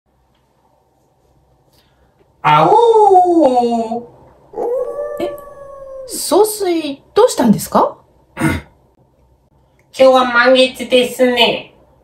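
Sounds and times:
person imitating wolf howl: 2.5s - 6.3s.

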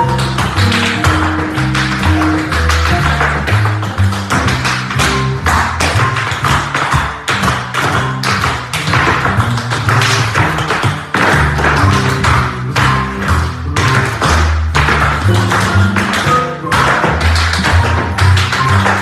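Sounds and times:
recorded music with bass line: 0.0s - 19.0s
tap shoes on hard floor: 0.0s - 19.0s.

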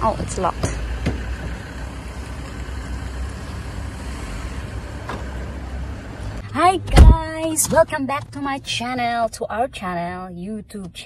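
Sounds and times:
woman's voice: 0.0s - 0.8s, 6.5s - 11.0s
vehicle engine rumbling: 0.0s - 11.0s.

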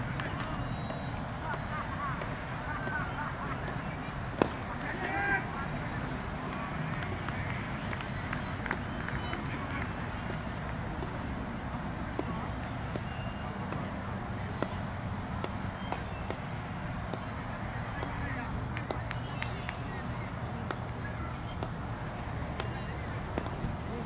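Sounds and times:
faint indistinct voices: 0.0s - 24.0s.

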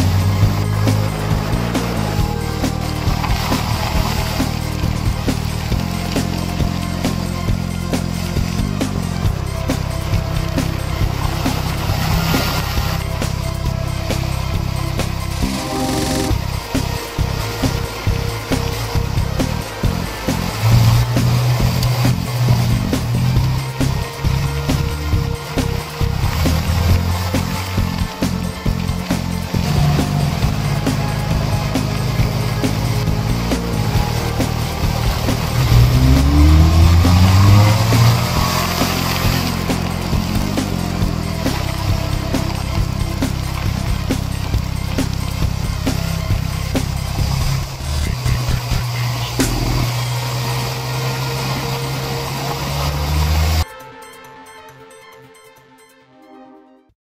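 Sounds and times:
motorcycle engine revving: 0.0s - 53.6s.

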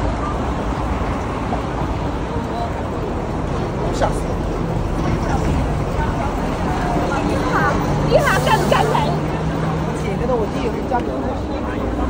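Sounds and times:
passers-by talking: 0.0s - 12.0s
street traffic rumbling: 0.0s - 12.0s.

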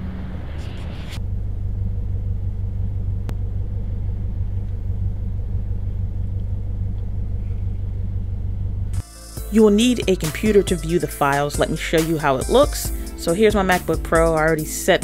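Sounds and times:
car engine low rumble: 0.0s - 15.0s.

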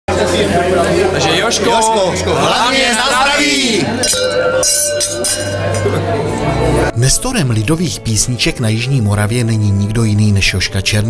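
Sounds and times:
wine glasses clinking: 3.5s - 6.2s.

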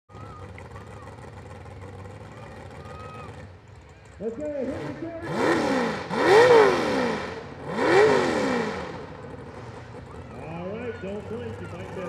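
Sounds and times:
faint voices: 0.1s - 5.4s, 9.8s - 12.0s
truck engine idling: 0.1s - 6.7s, 8.6s - 12.0s.

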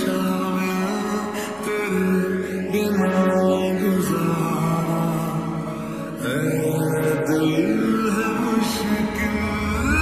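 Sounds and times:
slowed reverb-heavy lo-fi pop music: 0.0s - 10.0s.

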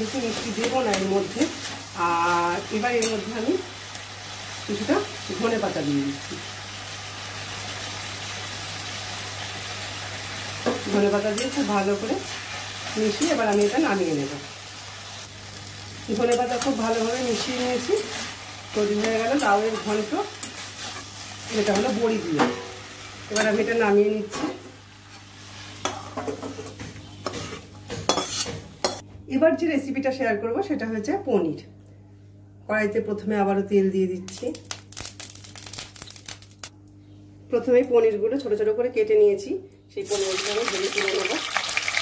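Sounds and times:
food sizzling in a wok: 0.0s - 26.7s, 40.0s - 42.0s
constant low hum: 0.0s - 40.3s.

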